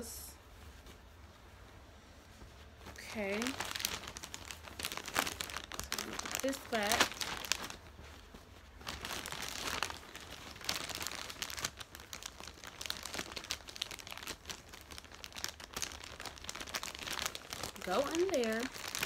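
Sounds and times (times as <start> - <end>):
plastic bag crinkling: 2.8 - 19.0.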